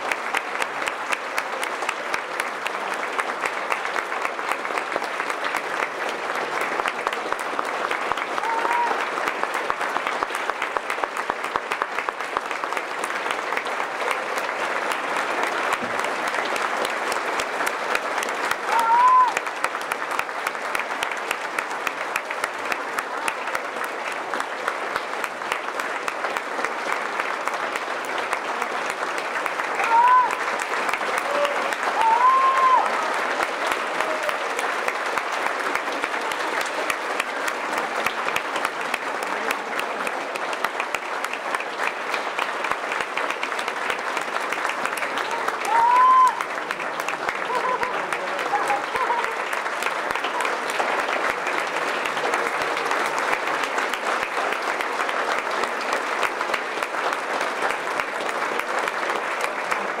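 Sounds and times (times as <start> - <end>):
audience applauding: 0.0 - 60.0
crowd cries: 8.4 - 9.2, 18.6 - 19.5, 29.8 - 34.6, 45.2 - 46.7.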